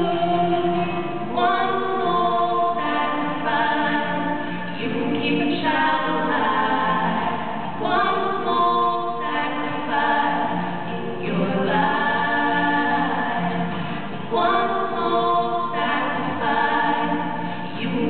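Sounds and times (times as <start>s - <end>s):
acoustic guitar: 0.0s - 18.0s
women singing in harmony: 0.0s - 18.0s.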